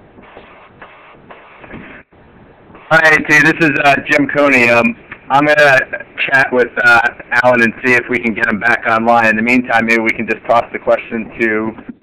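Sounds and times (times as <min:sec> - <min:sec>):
crackling phone line: 0:00.0 - 0:12.0.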